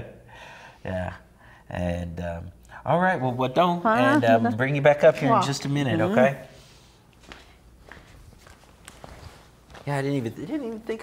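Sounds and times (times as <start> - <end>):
faint footsteps: 7.0 - 11.0.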